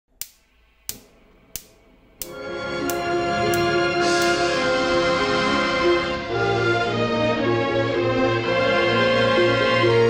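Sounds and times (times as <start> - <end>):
gas igniter clicking: 0.2 - 4.6.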